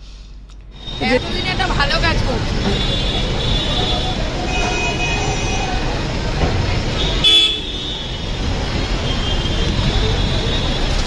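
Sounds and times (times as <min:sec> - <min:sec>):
busy street traffic: 0:00.0 - 0:11.0
car horn toots: 0:07.0 - 0:08.2.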